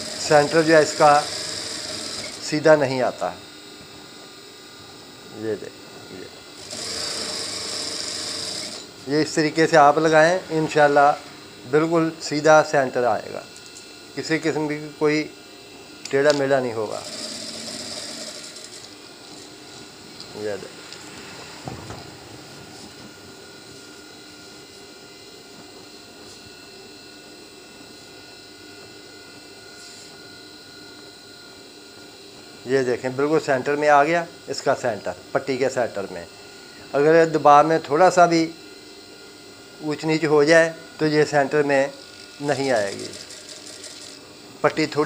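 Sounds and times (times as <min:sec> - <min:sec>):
sewing machine whirring: 0:00.0 - 0:02.5, 0:06.6 - 0:08.9, 0:16.8 - 0:19.0, 0:42.1 - 0:44.2.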